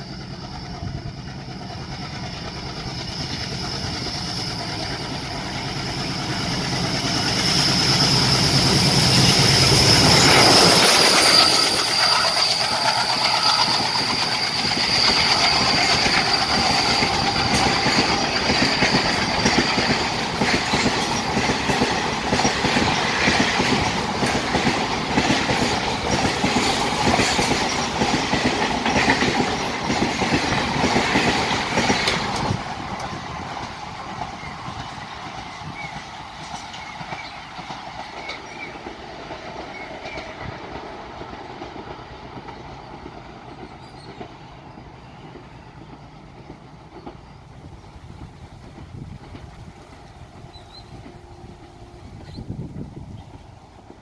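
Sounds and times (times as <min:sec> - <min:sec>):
diesel locomotive engine drone: 0:00.0 - 0:54.0
high whine from train wheels: 0:00.0 - 0:54.0
train wheels clacking on rails: 0:00.0 - 0:54.0.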